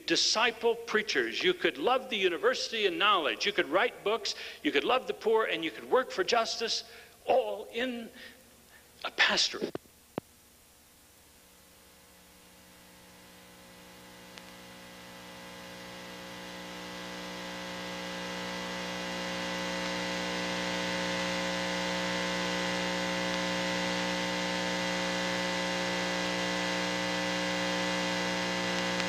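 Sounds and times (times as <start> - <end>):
buzzy electrical hum with hiss: 0.0 - 29.0.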